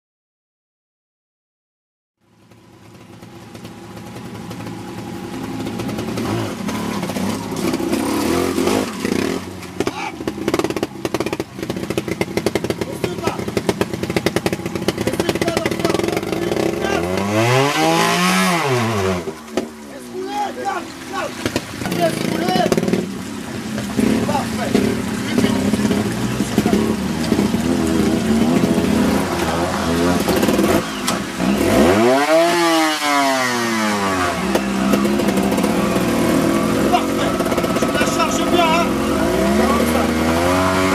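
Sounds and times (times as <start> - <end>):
motorcycle engine revving: 2.2 - 40.9.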